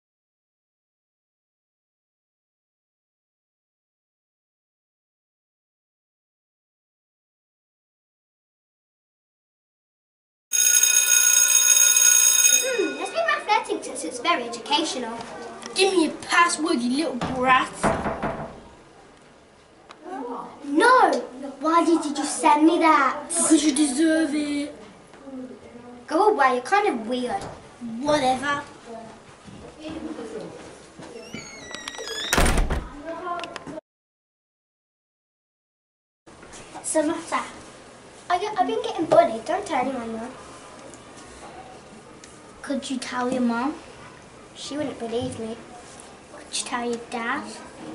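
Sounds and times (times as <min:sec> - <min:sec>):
electric school bell ringing: 0:10.5 - 0:13.9.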